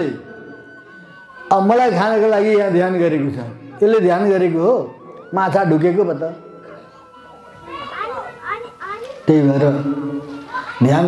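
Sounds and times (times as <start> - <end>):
child calling: 6.7 - 11.0.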